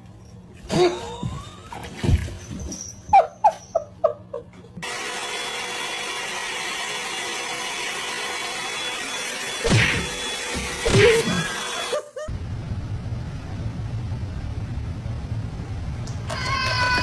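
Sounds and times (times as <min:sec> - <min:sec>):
hair dryer running: 0:04.8 - 0:12.3.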